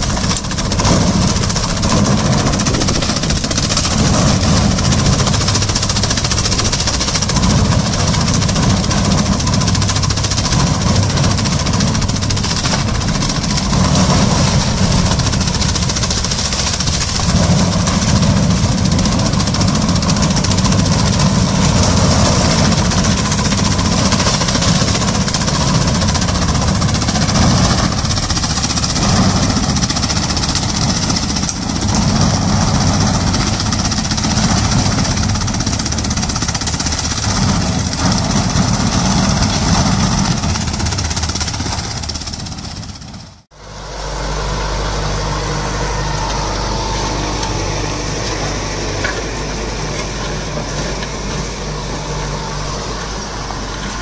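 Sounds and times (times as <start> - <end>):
mulcher chopping: 0.0 - 43.4, 45.1 - 54.0
tractor engine under load: 0.0 - 54.0.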